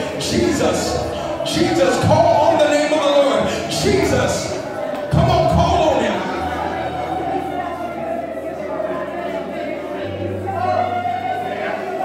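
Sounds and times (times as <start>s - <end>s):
congregation singing and calling out: 0.0s - 12.0s
keyboard sustained chords: 0.0s - 12.0s.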